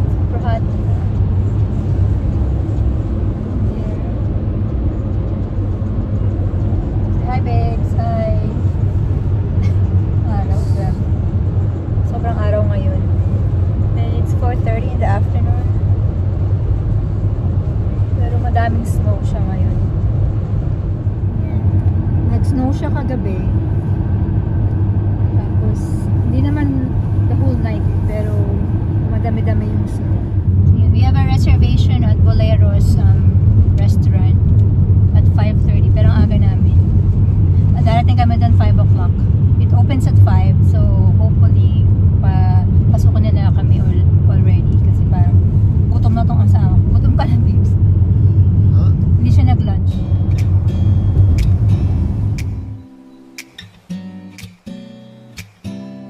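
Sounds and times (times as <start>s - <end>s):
car interior road rumble: 0.0s - 53.6s.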